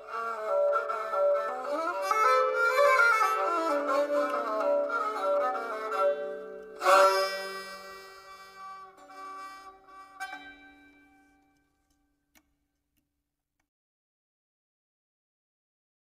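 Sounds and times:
folk tune on string instruments: 0.0s - 11.7s.

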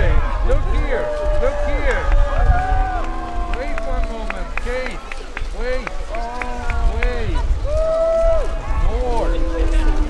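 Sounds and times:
crowd chatter: 0.0s - 10.0s
low rumble: 0.0s - 10.0s.

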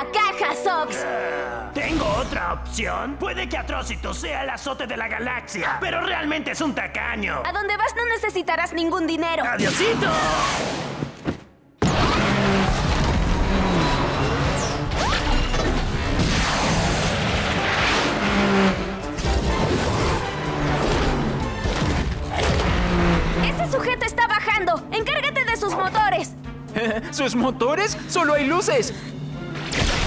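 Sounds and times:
space vehicle engines: 11.8s - 24.1s
driving musical score: 12.2s - 29.8s.

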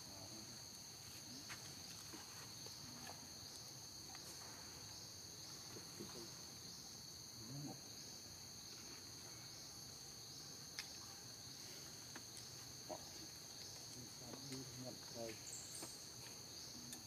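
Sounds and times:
insect chorus buzzing: 0.0s - 17.0s.

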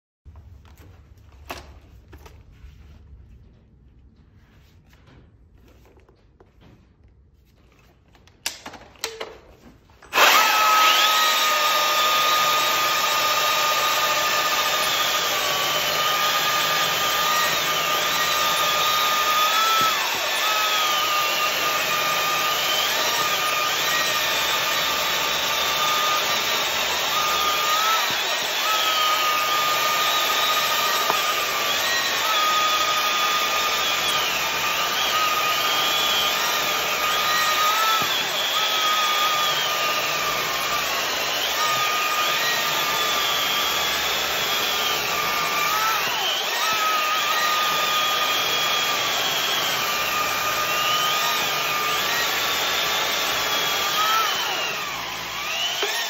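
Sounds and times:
battery chainsaws whining: 10.0s - 56.0s.

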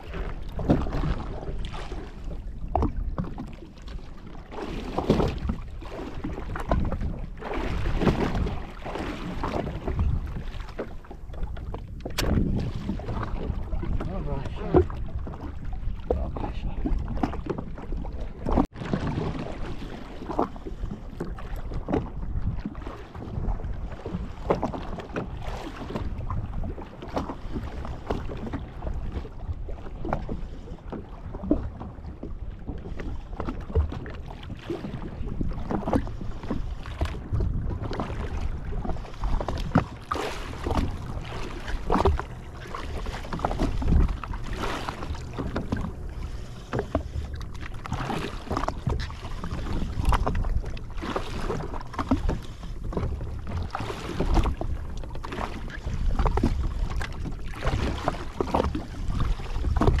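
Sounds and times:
sharp knocks and splashes: 0.0s - 3.7s, 4.5s - 27.4s, 30.9s - 60.0s
water slapping against hull: 0.0s - 60.0s
wind rumbling on microphone: 0.0s - 60.0s.

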